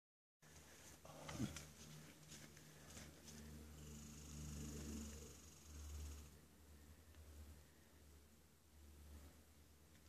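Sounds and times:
faint low rumble: 0:00.4 - 0:10.0.

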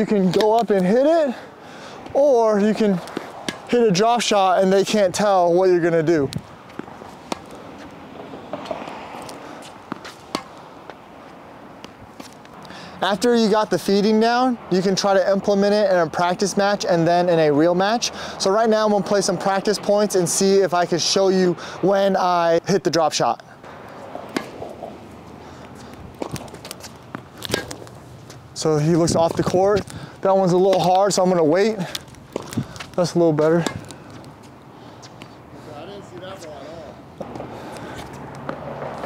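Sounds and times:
tennis balls struck and bouncing: 0:00.0 - 0:01.1, 0:02.0 - 0:04.3, 0:06.2 - 0:13.3, 0:23.7 - 0:28.5, 0:29.1 - 0:35.4, 0:37.1 - 0:39.0.

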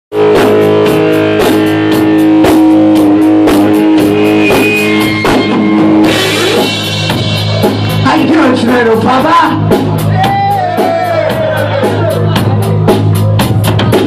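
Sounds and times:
steady drum beat: 0:00.1 - 0:14.0.

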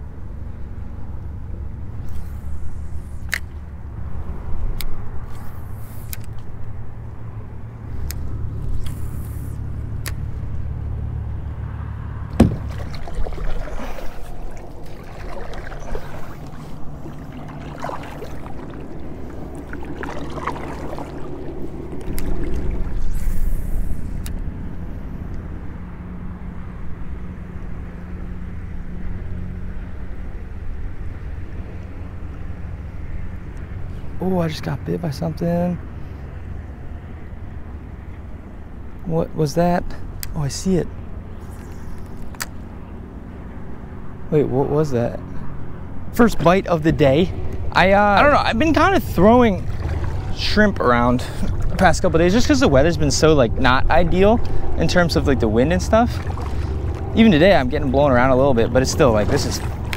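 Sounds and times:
wind rumbling on microphone: 0:00.0 - 0:34.2, 0:45.2 - 0:59.9
sharp knock: 0:12.3 - 0:12.7
kayak paddle splashes: 0:12.3 - 0:24.0, 0:47.4 - 0:59.9.

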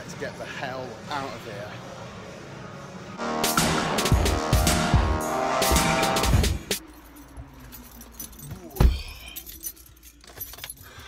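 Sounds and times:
keys jangling: 0:06.7 - 0:11.0.

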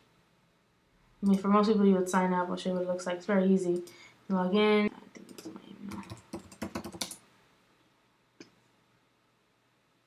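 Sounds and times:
computer keyboard typing: 0:05.2 - 0:07.2.

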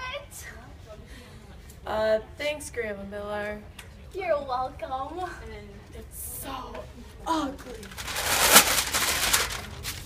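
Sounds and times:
wrapping paper crinkling: 0:07.8 - 0:10.0.

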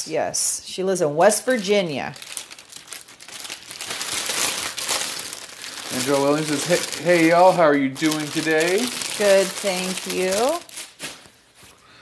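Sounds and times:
plastic packaging crinkling: 0:01.4 - 0:11.6.

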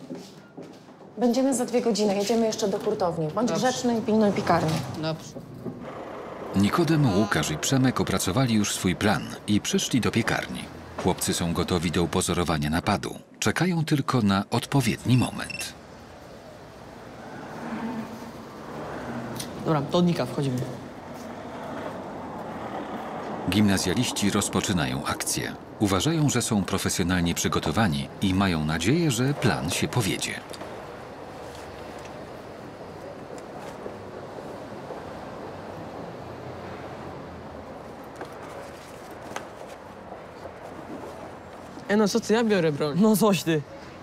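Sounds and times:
street background noise: 0:00.0 - 0:44.0.

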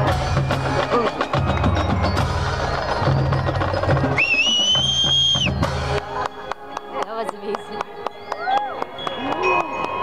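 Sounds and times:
marching drumline drumming: 0:00.0 - 0:10.0
shrill whistle: 0:04.2 - 0:05.6.

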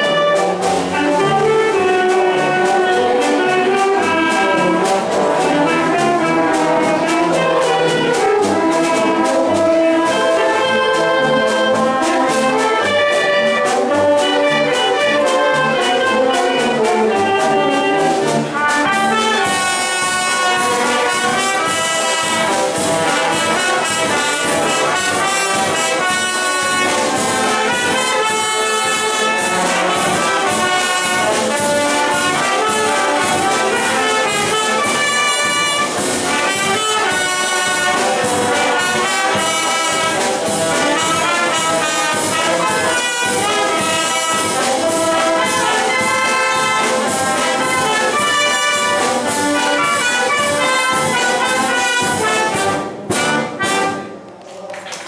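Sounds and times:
wind band playing: 0:00.0 - 0:54.5.

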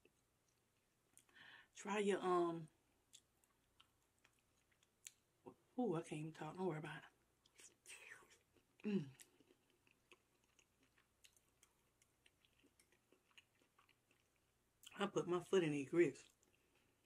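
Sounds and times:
mouth chewing wet clicks: 0:03.1 - 0:05.2, 0:07.4 - 0:15.0
person humming mm: 0:08.8 - 0:09.2.

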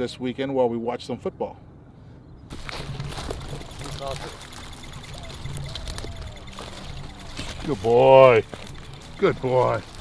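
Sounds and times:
dry grass rustling and crunching: 0:02.5 - 0:10.0.

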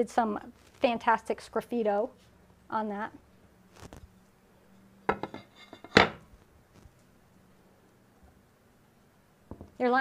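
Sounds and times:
ceramic tile clattering: 0:05.1 - 0:06.2.

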